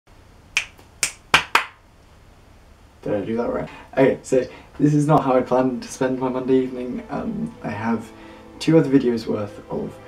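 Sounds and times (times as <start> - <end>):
finger snaps: 0.6 - 1.7.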